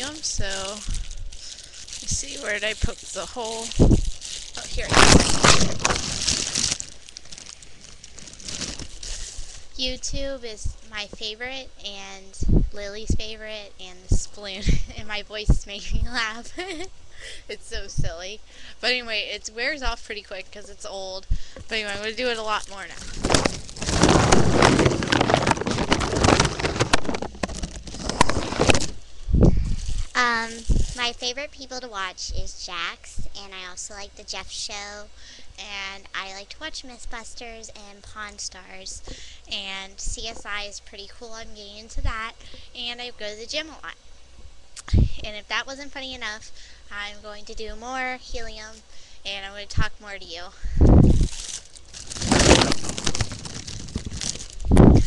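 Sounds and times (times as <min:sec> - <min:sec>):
foil balloon crinkling: 0:00.0 - 0:11.4, 0:18.9 - 0:31.4, 0:50.9 - 0:55.0.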